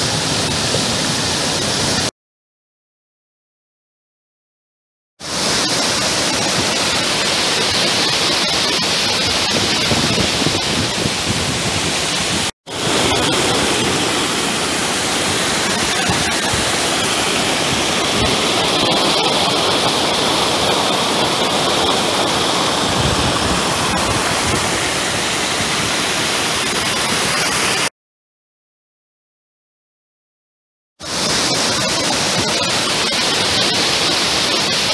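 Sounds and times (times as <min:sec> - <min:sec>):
whitewater rushing: 0:00.0 - 0:02.1, 0:05.2 - 0:27.9, 0:31.0 - 0:34.9.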